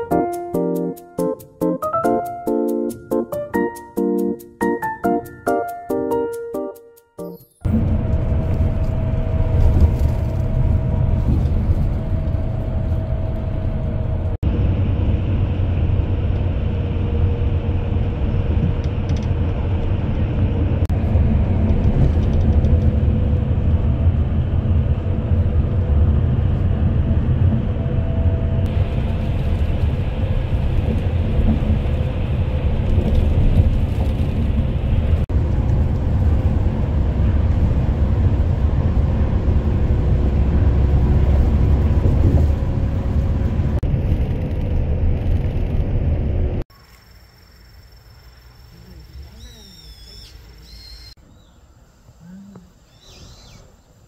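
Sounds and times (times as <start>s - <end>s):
bus road and engine rumble: 7.6s - 46.7s.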